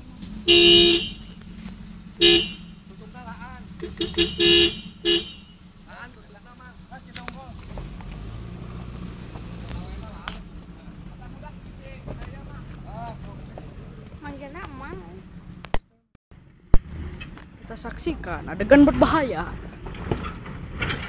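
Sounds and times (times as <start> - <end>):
voices talking: 0.0 - 8.4, 9.0 - 15.4, 17.4 - 19.9
engine running at low revs: 0.0 - 15.8.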